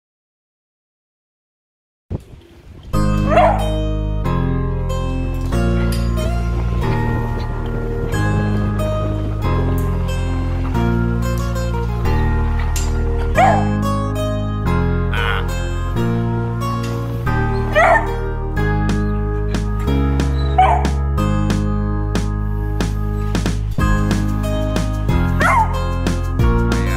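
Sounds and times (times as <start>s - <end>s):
plucked-string music: 2.9s - 26.9s
dog barking: 3.2s - 3.7s, 13.4s - 13.8s, 17.7s - 18.2s, 20.6s - 21.0s, 25.4s - 25.8s.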